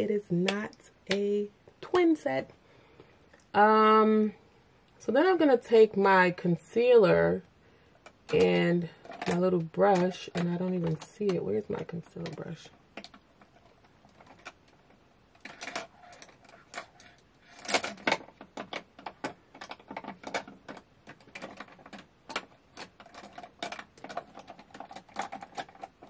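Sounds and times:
makeup items clattering on table: 8.1s - 14.7s, 15.4s - 26.0s.

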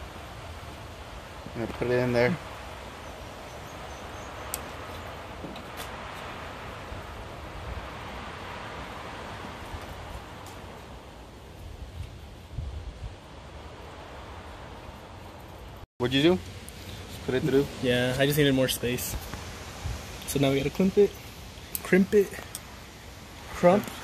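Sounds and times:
background hiss: 0.0s - 24.0s.

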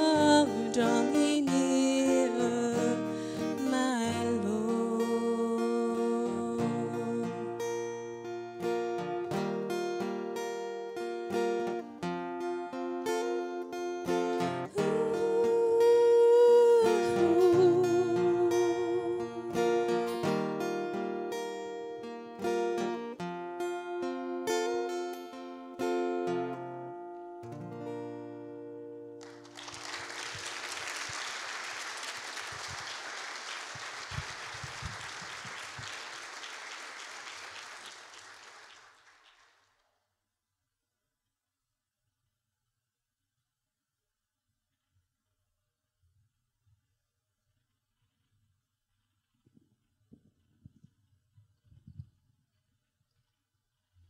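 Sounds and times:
woman singing: 0.0s - 7.8s, 14.7s - 20.0s
acoustic guitar: 0.0s - 31.3s
audience applauding: 29.2s - 39.6s.

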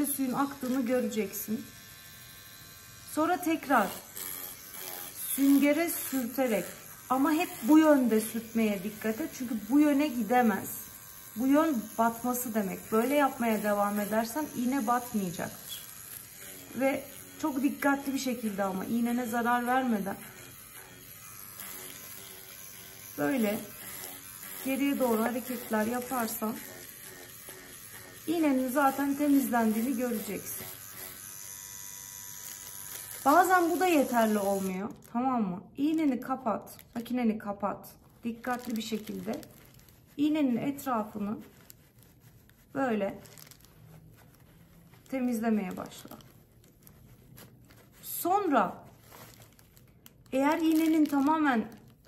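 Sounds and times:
tattoo machine buzzing: 0.0s - 35.1s
paper towel rustling: 38.0s - 52.0s.

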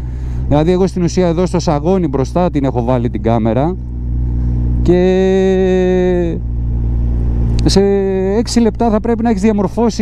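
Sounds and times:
motorcycle engine running low: 0.0s - 10.0s.

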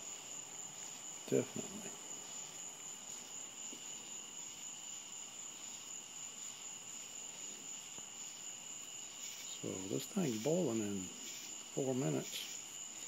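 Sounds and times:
crickets trilling: 0.0s - 13.0s.

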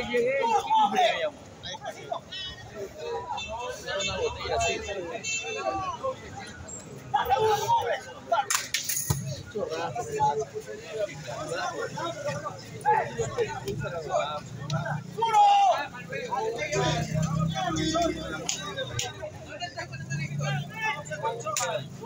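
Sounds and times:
men talking and calling out: 0.0s - 22.0s.

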